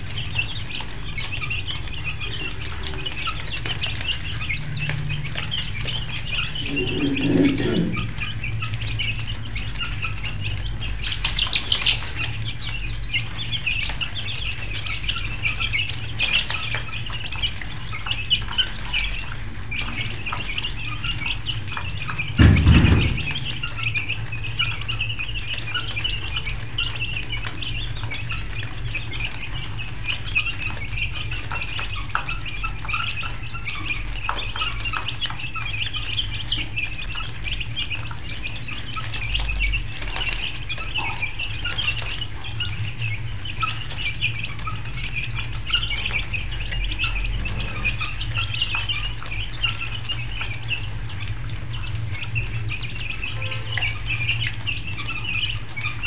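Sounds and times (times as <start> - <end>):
flock of birds chirping: 0.0 - 56.0
low steady hum: 2.3 - 9.6.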